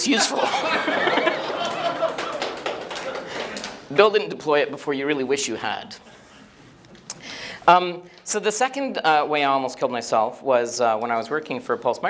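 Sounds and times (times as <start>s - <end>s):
audience laughing: 0.1s - 3.8s
scattered claps and taps: 1.3s - 3.8s.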